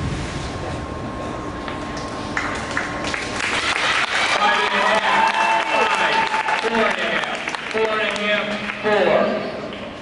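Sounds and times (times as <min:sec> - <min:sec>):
indoor pool hall background noise: 0:00.0 - 0:10.0
spectators clapping: 0:02.4 - 0:08.8.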